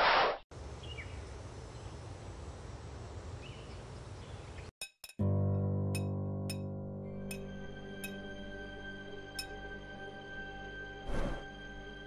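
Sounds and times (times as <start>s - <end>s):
music with sustained low notes: 5.2s - 12.0s.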